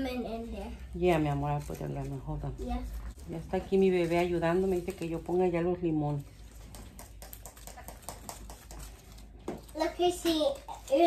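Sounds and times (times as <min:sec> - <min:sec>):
artificial stems rustling on wreath: 0:00.4 - 0:11.0.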